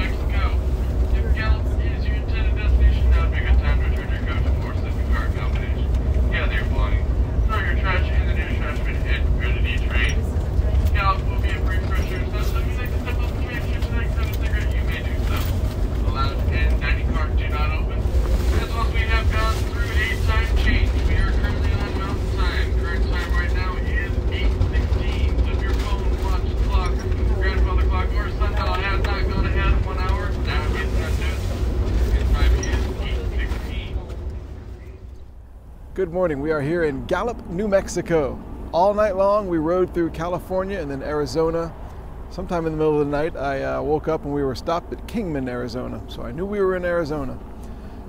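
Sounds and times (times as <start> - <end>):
conductor announcement over loudspeaker: 0.0 - 35.0
moving train rumble: 0.0 - 48.0.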